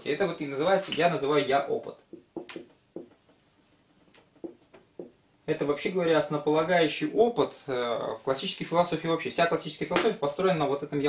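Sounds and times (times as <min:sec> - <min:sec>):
marker pen on whiteboard: 0:00.6 - 0:05.3.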